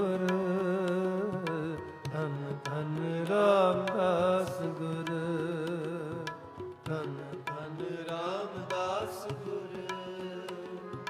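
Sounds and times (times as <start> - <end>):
harmonium sustained notes: 0.0 - 11.0
man singing: 0.0 - 11.0
tabla beat: 0.0 - 11.0.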